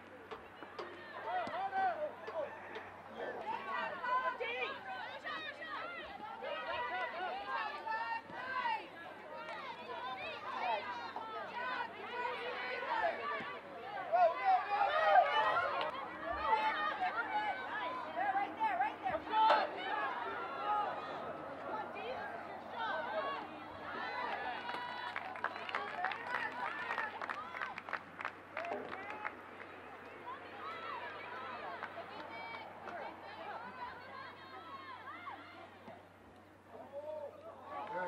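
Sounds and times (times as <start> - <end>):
overlapping chatter and calls: 0.0 - 38.0.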